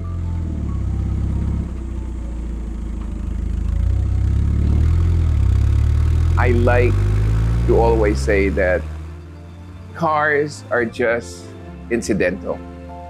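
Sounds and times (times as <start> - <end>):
car engine running: 0.0 - 10.9.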